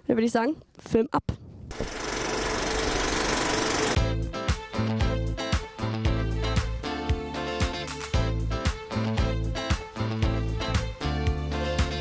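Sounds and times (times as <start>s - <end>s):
film projector rattling: 1.7s - 4.0s.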